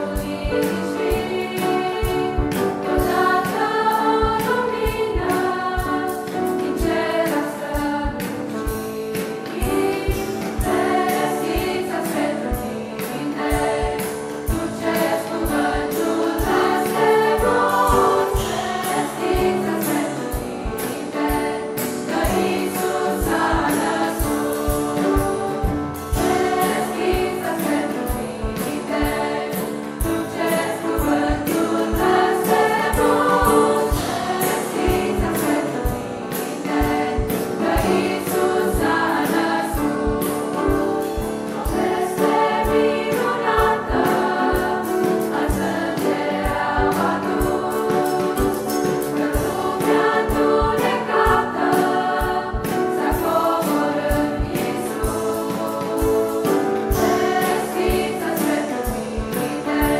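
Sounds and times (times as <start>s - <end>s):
choir singing a carol in harmony: 0.0s - 59.9s.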